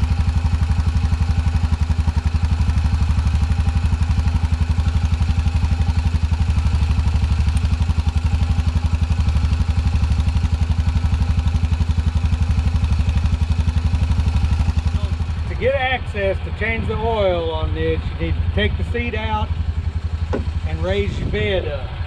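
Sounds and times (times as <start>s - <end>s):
engine idling: 0.0s - 22.0s.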